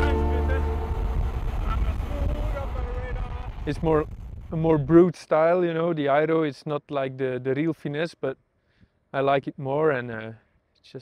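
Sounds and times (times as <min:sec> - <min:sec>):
wind and road noise: 0:00.0 - 0:05.1.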